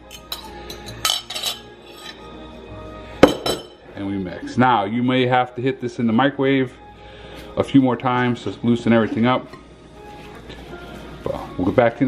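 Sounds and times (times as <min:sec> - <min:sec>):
spoon clinking against ceramic bowl: 0:00.0 - 0:02.2.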